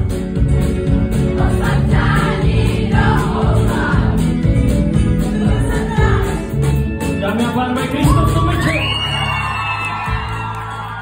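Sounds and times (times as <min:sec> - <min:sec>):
live band with acoustic guitars: 0:00.0 - 0:11.0.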